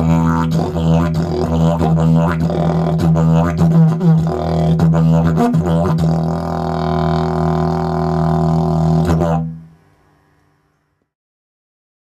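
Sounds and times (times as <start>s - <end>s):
didgeridoo drone: 0.0s - 9.6s.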